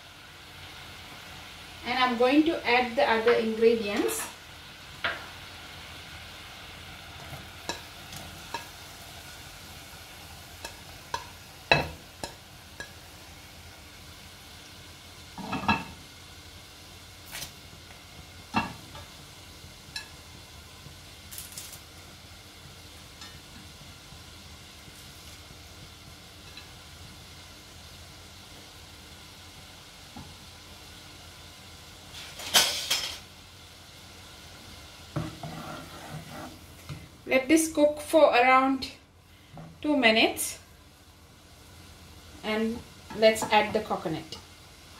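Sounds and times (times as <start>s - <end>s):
water boiling in a saucepan: 0.0s - 44.9s
spatula stirring a pot: 7.2s - 13.2s, 35.1s - 37.1s
food scraped off a plate: 35.4s - 36.6s.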